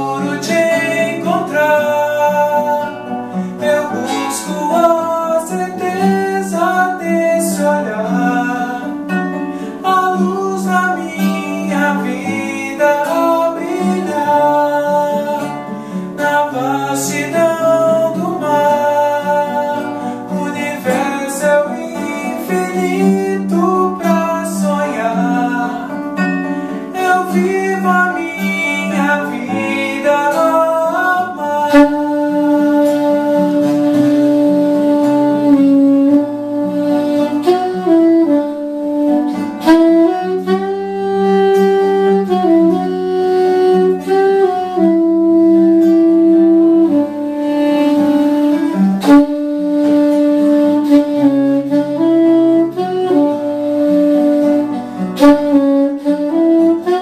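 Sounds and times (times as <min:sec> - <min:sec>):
classical guitar fingerpicked: 0:00.0 - 0:57.0
soprano saxophone melody: 0:00.0 - 0:57.0.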